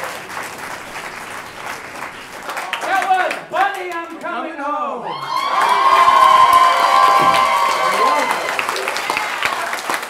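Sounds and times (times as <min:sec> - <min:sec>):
audience applauding: 0:00.0 - 0:04.0, 0:05.1 - 0:10.0
voices cheering: 0:05.0 - 0:10.0.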